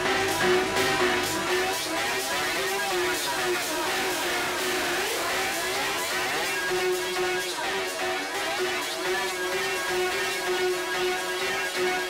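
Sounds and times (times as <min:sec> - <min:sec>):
swirling synth texture: 0:00.0 - 0:12.0.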